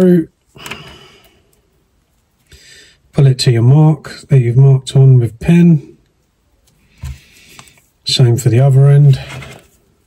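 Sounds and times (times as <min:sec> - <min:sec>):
soft breath drawn in: 0:06.8 - 0:07.9
faint handling noise: 0:08.9 - 0:10.0.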